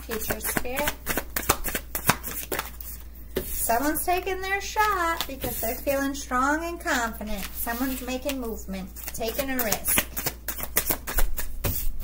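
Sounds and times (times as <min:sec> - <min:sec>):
cards being shuffled by hand: 0:00.1 - 0:05.9, 0:06.8 - 0:12.0.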